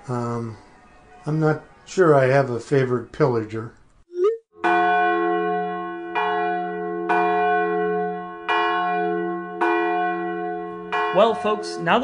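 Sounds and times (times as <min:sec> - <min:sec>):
church bell tolling: 0:04.6 - 0:12.0.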